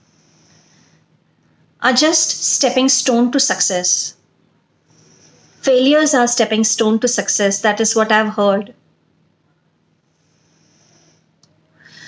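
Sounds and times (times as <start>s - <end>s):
woman breathing: 0.0s - 1.8s, 4.8s - 6.0s, 9.8s - 12.0s.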